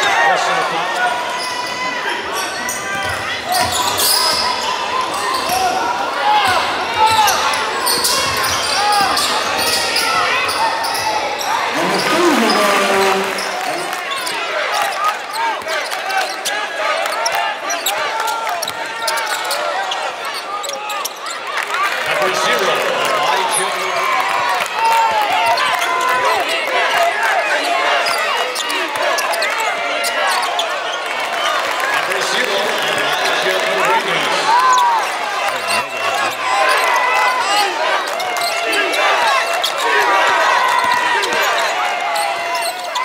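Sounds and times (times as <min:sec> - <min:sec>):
voices of players and spectators: 0:00.0 - 0:43.0
sneaker squeaks: 0:02.4 - 0:05.8, 0:07.0 - 0:21.4, 0:40.8 - 0:43.0.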